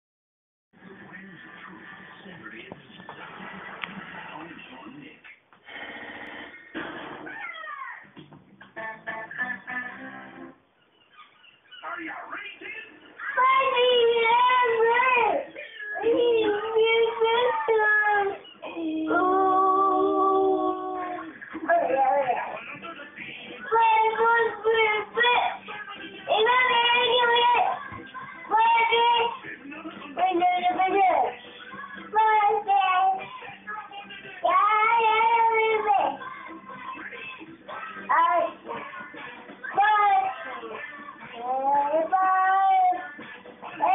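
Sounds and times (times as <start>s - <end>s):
television sound: 0.7s - 43.9s
high-pitched singing: 16.0s - 22.2s, 23.6s - 29.5s, 30.2s - 43.9s.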